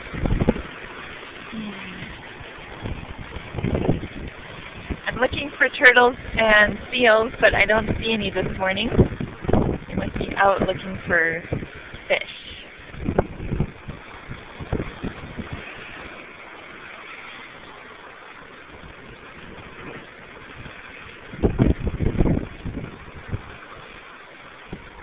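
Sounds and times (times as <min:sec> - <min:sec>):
loud low rumbles: 0:00.0 - 0:16.1
ocean surf against rock: 0:00.0 - 0:25.0.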